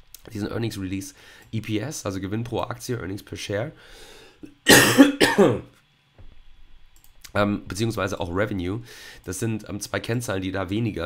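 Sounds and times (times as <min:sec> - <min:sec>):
man coughing: 0:04.6 - 0:05.7.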